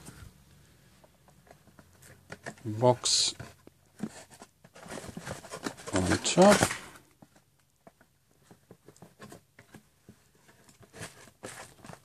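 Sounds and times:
cardboard scrape: 1.6 - 7.0, 8.5 - 12.0.

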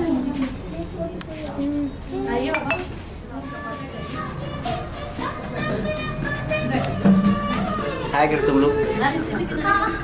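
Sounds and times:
tableware clinking: 2.5 - 3.0.

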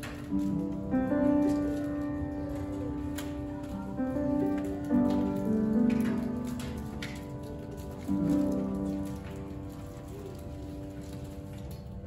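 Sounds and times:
grand piano accompaniment: 0.0 - 12.0.

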